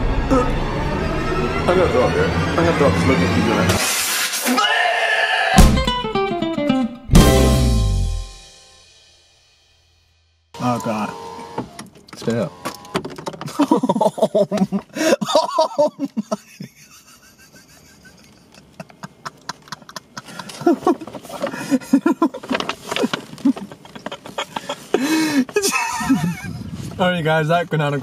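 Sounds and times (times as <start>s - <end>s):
people laughing and exclaiming: 13.5s - 26.7s.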